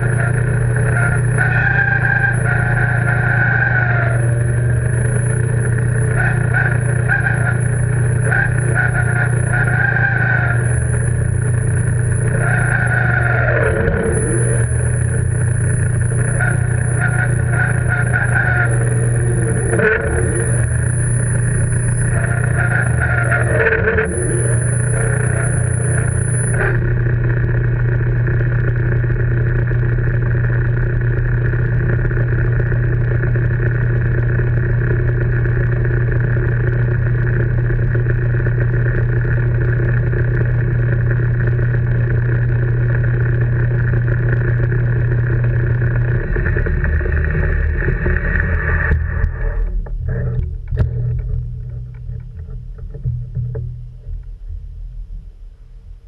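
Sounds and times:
lathe motor hum: 0:00.0 - 0:54.2.

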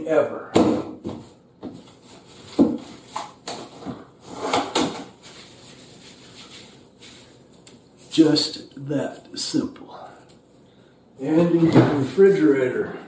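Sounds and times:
cling wrap rustling: 0:01.8 - 0:08.4.

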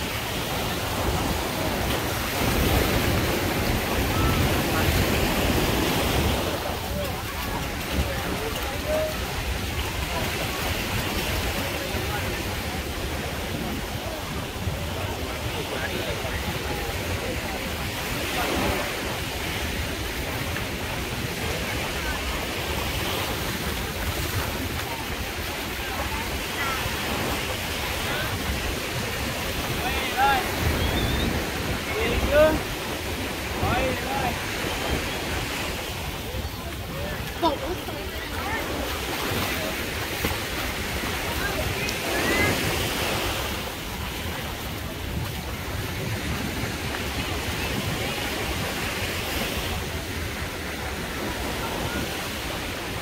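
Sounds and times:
chatter of many people: 0:00.0 - 0:53.0
small waves washing in: 0:00.0 - 0:53.0
wind on microphone: 0:00.0 - 0:53.0.

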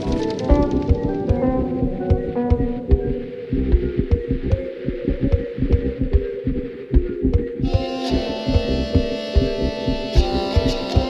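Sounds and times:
chill pop instrumental: 0:00.0 - 0:06.2, 0:07.0 - 0:11.0.

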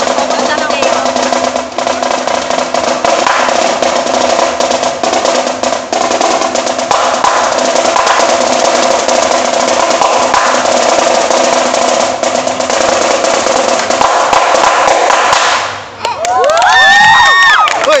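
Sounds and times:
marching snare drum rolls: 0:00.0 - 0:16.0
children cheering and shouting: 0:16.0 - 0:18.0.

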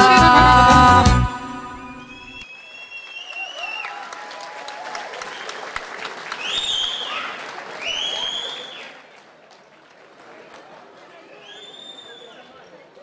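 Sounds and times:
high whistles: 0:01.6 - 0:04.0, 0:06.4 - 0:09.0, 0:11.3 - 0:12.6
audience applauding and cheering: 0:02.0 - 0:12.4.

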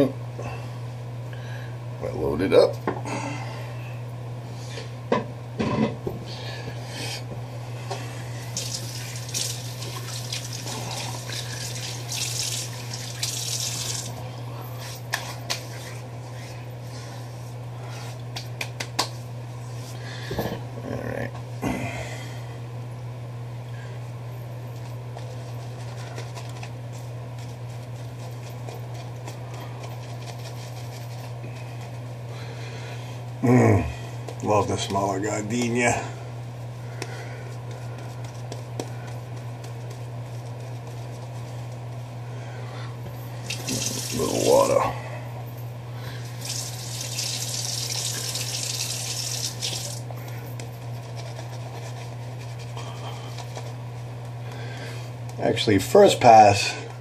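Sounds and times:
steady low hum: 0:00.0 - 0:57.0
water running from tap: 0:08.5 - 0:14.2, 0:43.4 - 0:44.8, 0:46.4 - 0:50.0.

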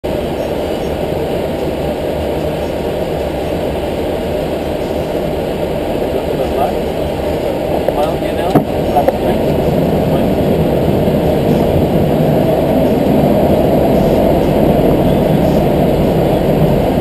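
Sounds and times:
airliner cockpit engine and airflow: 0:00.0 - 0:17.0.

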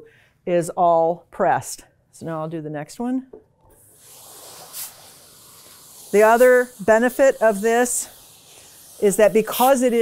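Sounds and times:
burst of steam: 0:03.8 - 0:10.0
steam iron hissing: 0:03.8 - 0:10.0.

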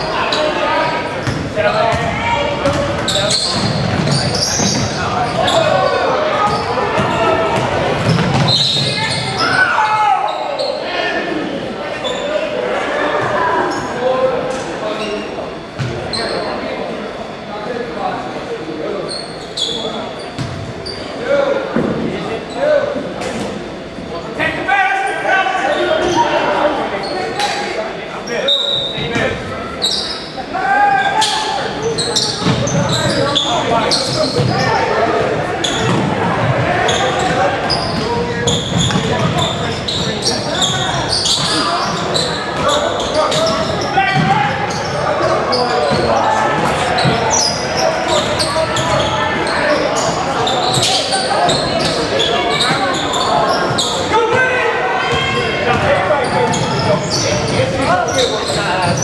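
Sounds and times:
voices echoing in gym: 0:00.0 - 0:59.0.

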